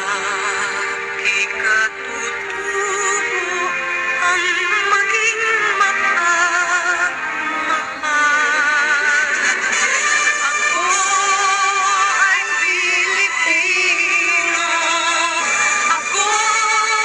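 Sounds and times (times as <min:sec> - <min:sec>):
backing music: 0:00.0 - 0:17.0
child singing with vibrato: 0:10.1 - 0:17.0.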